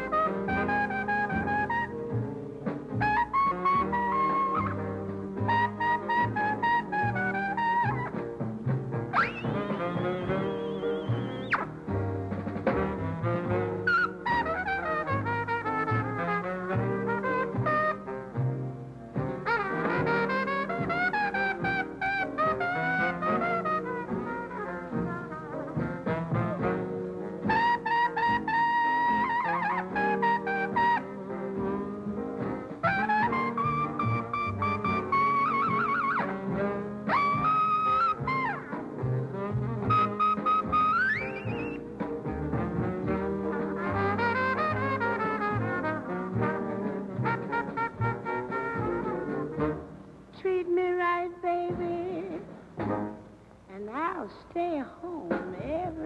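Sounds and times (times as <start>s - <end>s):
trumpet solo: 0.0s - 2.2s, 3.0s - 8.2s, 9.1s - 12.0s, 12.6s - 18.6s, 19.2s - 50.5s
small jazz band: 0.0s - 56.0s.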